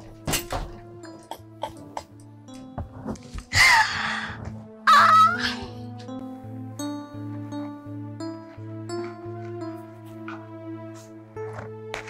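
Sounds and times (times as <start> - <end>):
soft background music: 0.0 - 12.0
woman squealing: 4.9 - 5.7.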